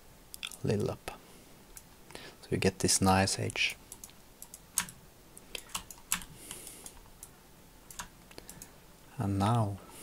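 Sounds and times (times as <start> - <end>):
keyboard and mouse clicks: 3.9 - 7.3, 7.9 - 8.7.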